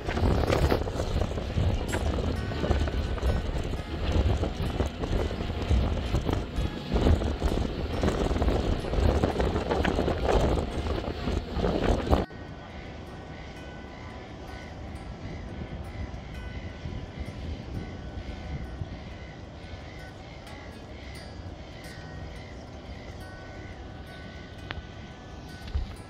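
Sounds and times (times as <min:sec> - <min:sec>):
city ambience: 0:00.0 - 0:26.0
faint steady tones: 0:00.0 - 0:26.0
wind and boat rumble: 0:00.0 - 0:26.0.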